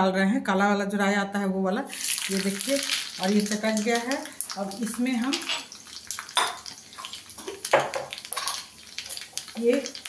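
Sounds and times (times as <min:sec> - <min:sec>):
seeds sizzling in hot oil: 0:01.9 - 0:10.0
crackles and pops: 0:02.0 - 0:10.0.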